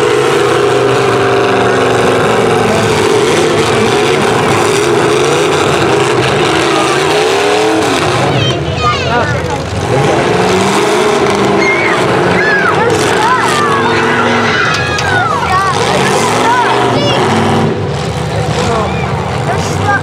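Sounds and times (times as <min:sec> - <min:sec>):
car engines revving: 0:00.0 - 0:20.0
crowd voices: 0:00.0 - 0:20.0.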